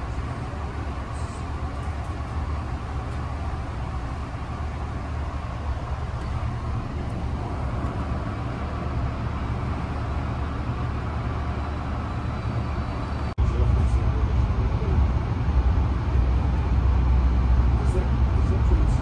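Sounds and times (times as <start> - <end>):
train car interior rumble and hiss: 0.0 - 19.0.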